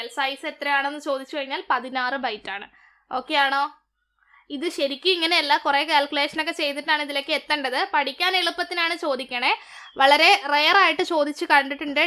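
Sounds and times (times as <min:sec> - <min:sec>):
woman talking: 0:00.0 - 0:03.8, 0:04.5 - 0:12.0.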